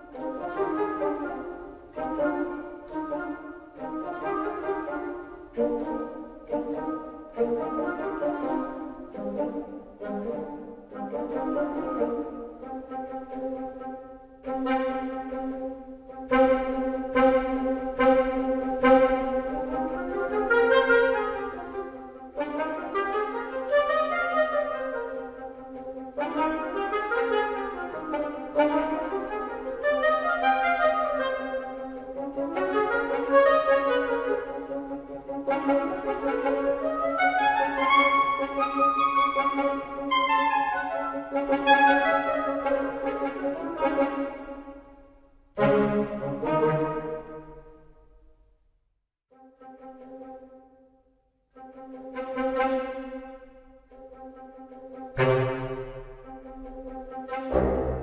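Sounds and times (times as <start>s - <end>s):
staccato woodwind runs: 0.0s - 44.7s, 51.6s - 58.0s.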